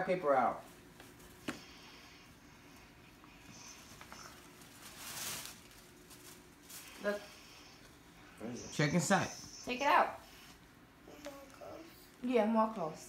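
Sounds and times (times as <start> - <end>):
gift paper rustling: 3.6 - 7.2.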